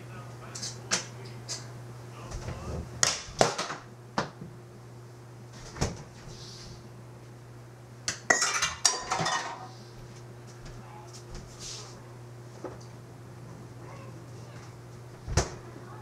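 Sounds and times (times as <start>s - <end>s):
dishes and cutlery clattering: 8.3s - 9.7s.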